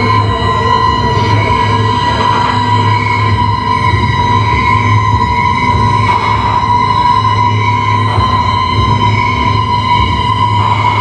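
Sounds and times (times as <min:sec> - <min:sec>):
high siren-like synth tone: 0:00.0 - 0:11.0
loud low bass drone: 0:00.0 - 0:11.0.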